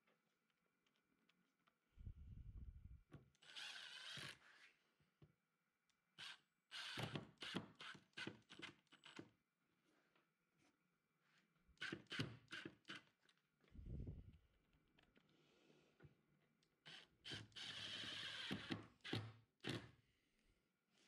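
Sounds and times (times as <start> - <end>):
impact driver driving screw into wood: 16.9 - 19.9.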